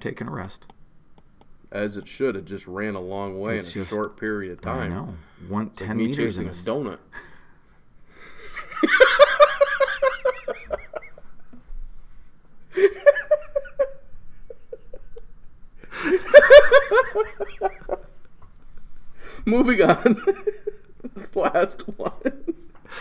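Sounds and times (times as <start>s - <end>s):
people laughing: 8.4s - 11.3s, 12.8s - 18.9s, 19.5s - 22.7s.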